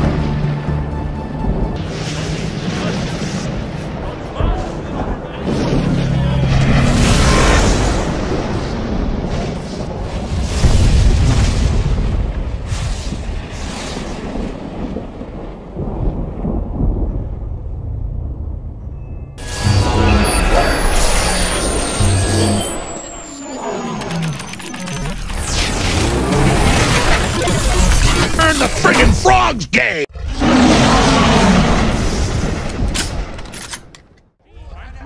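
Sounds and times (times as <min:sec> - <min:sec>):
dramatic film score: 0:00.0 - 0:35.0
deep booms and rumbling: 0:03.9 - 0:19.0.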